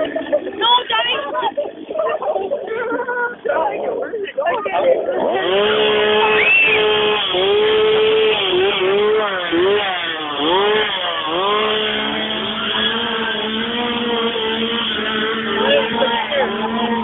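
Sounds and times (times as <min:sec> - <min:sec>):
small engine revving: 0:04.7 - 0:17.0.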